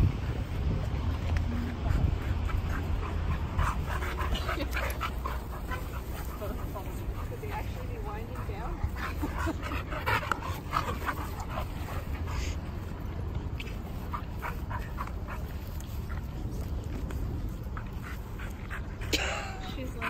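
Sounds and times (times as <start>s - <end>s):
dogs play-wrestling: 0.0s - 20.0s.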